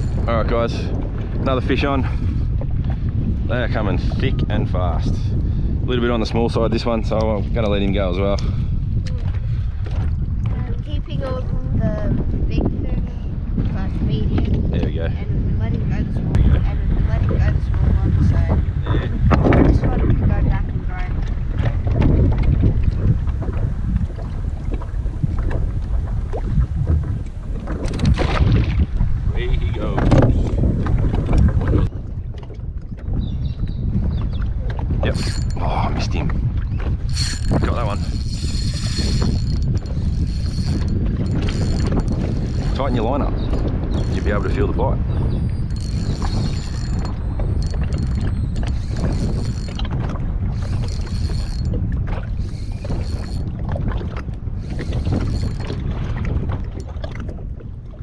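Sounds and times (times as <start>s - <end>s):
water against kayak hull: 0.0s - 58.0s
wind buffeting microphone: 0.0s - 58.0s
mechanical whirring bursts: 45.7s - 49.8s, 52.4s - 53.4s.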